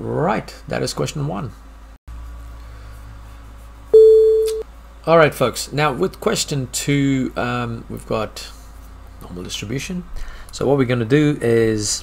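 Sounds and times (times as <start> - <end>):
electronic beep: 4.0 - 4.6.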